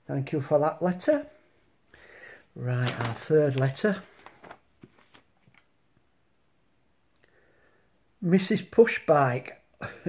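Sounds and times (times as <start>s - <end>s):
paper rustling: 2.6s - 5.7s.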